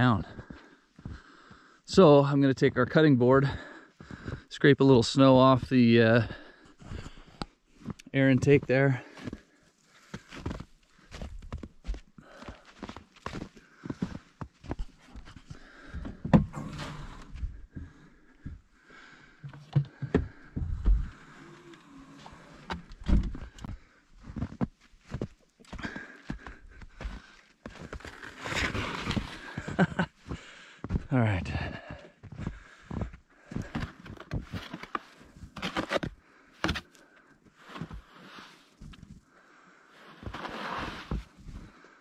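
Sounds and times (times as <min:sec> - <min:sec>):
footsteps in snow: 0:06.8 - 0:15.7, 0:23.6 - 0:31.1, 0:40.0 - 0:41.7
knocks and thumps: 0:19.4 - 0:21.2
snow being scraped: 0:28.0 - 0:29.9, 0:37.6 - 0:38.7, 0:40.0 - 0:41.4.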